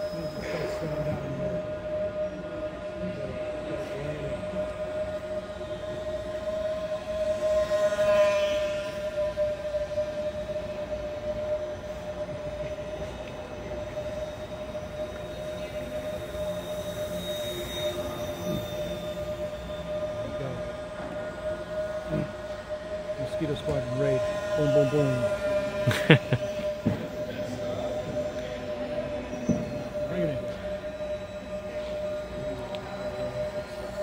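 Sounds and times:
model plane motors whining: 0.0s - 34.0s.

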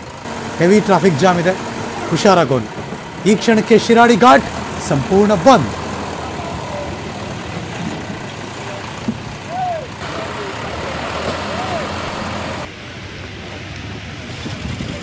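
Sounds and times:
diesel engine running: 0.0s - 13.4s
faint voices: 0.3s - 12.7s.

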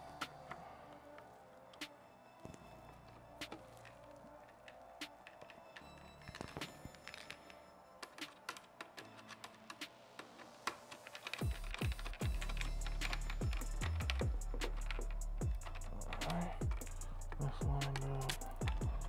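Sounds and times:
background music: 0.0s - 19.0s
plastic parts being handled: 2.4s - 19.0s
loud bass beat: 12.2s - 19.0s.

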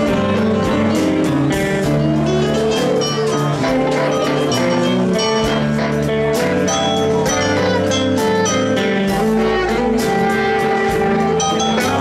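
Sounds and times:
blues rock band playing: 0.0s - 12.0s
electric guitar lead: 0.0s - 12.0s.

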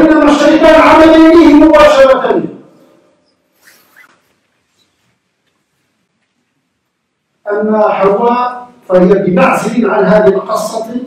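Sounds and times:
faint short squeaks: 3.2s - 5.1s.

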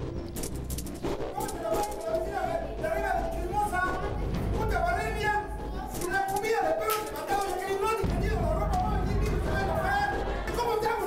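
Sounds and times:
steady low background: 0.0s - 6.1s, 7.7s - 10.8s.

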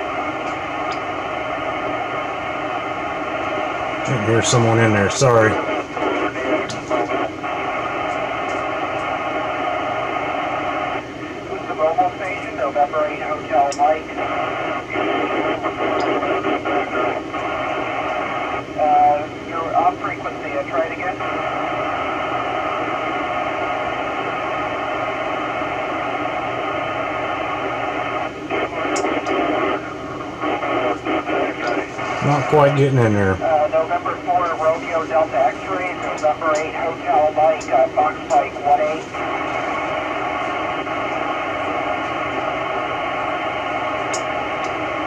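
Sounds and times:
radio static hiss: 0.0s - 45.0s.

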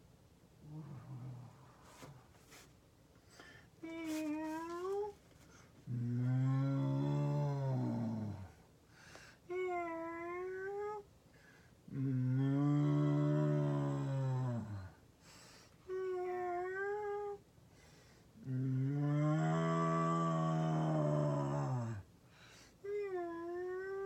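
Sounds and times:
woman imitating a moo: 5.9s - 8.4s, 18.4s - 22.0s.

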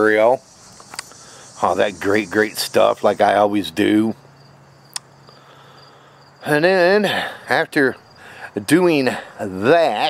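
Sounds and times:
crickets chirping: 0.0s - 10.0s
sharp click: 0.8s - 1.2s, 4.9s - 5.1s.

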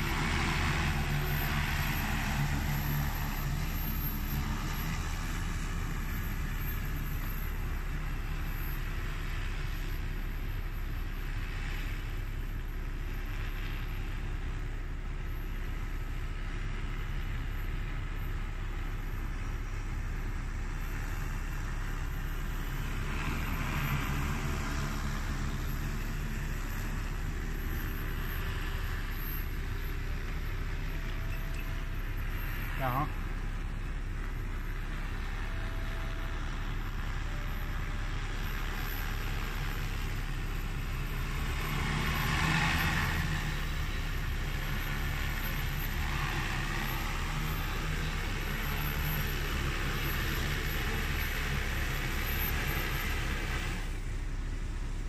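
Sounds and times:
drone propellers droning: 0.0s - 55.0s.

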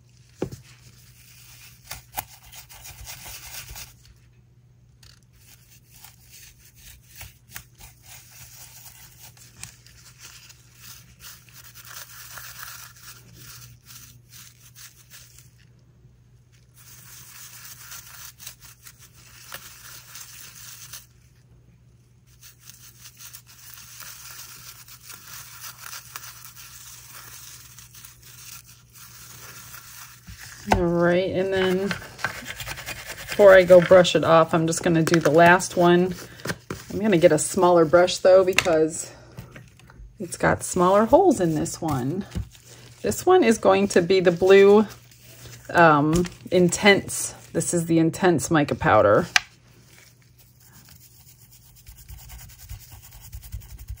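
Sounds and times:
paintbrush scrubbing hard surface: 26.5s - 36.0s, 50.4s - 54.0s.

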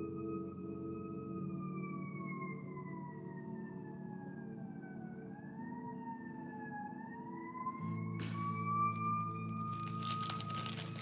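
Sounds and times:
soft ambient music: 0.0s - 11.0s
paper rustling: 9.6s - 11.0s.

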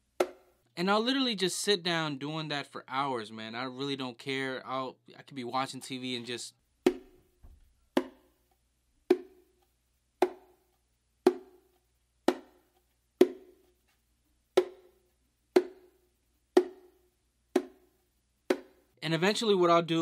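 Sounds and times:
bongo slaps: 6.9s - 7.2s, 8.0s - 8.2s, 9.1s - 9.4s, 10.2s - 10.5s, 11.3s - 11.6s, 12.3s - 12.6s, 13.2s - 13.6s, 14.6s - 14.9s, 15.6s - 15.9s, 16.6s - 16.9s, 17.6s - 17.8s, 18.5s - 18.8s.

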